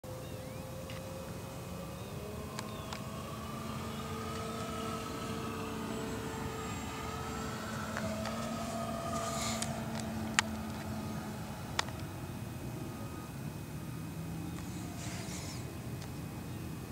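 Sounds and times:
distant engine droning: 0.0 - 16.9.

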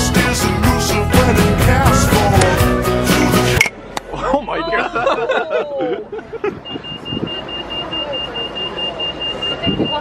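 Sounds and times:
street noise: 0.0 - 10.0
voices: 6.9 - 10.0.

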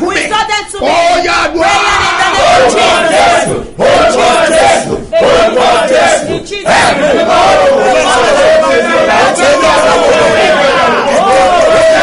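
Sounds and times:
voices shouting in worship: 0.0 - 12.0.

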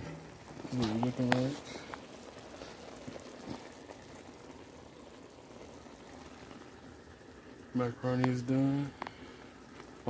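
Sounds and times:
pot of water boiling: 0.0 - 10.0.

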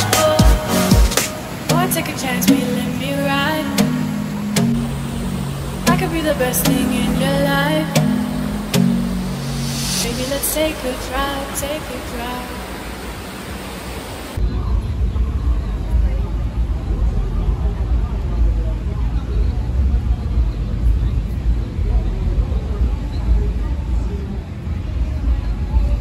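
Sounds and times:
pop song: 0.0 - 12.8
faint background noise: 0.0 - 26.0.

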